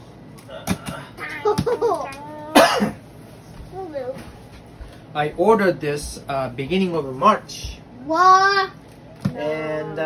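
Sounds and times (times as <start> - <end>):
person coughing: 2.5 - 3.0.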